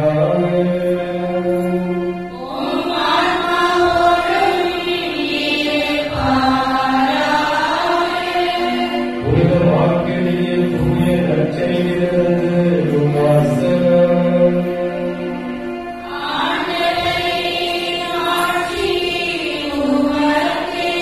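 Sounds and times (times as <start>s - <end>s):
slow sung liturgical chant: 0.0s - 15.4s, 16.1s - 21.0s.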